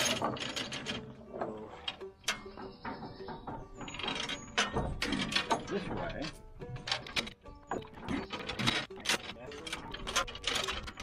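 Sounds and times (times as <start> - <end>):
metal chain clicks and knocks: 0.0 - 11.0.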